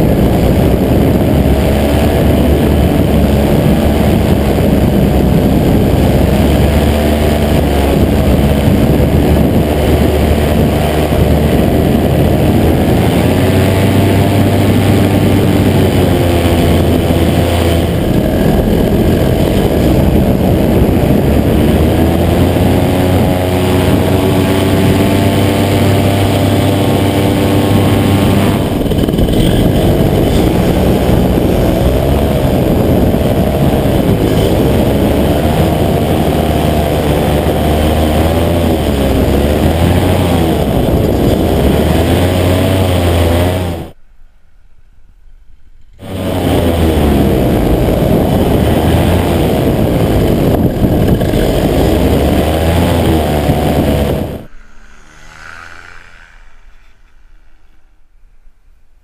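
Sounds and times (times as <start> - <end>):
paramotor engine and propeller: 0.0 - 44.0, 45.9 - 58.2.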